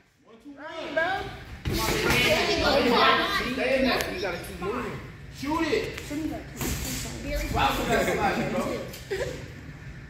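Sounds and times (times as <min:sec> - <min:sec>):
indistinct voices in large room: 0:00.0 - 0:10.0.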